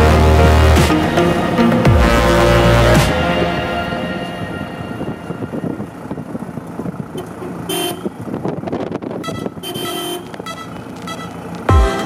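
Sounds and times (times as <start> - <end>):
road noise: 0.0 - 12.0
vehicle horn tooting: 7.1 - 8.2, 9.1 - 11.4.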